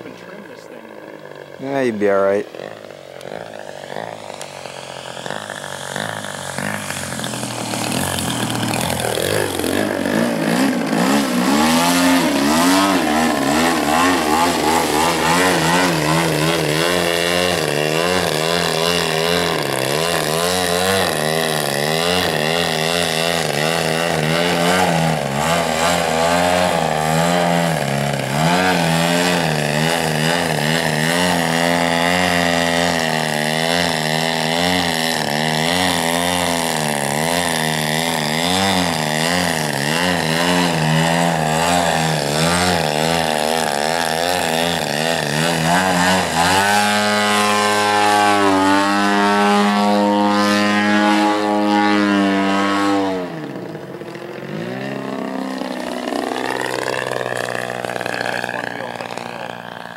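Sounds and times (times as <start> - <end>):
model plane engine: 0.0 - 59.9.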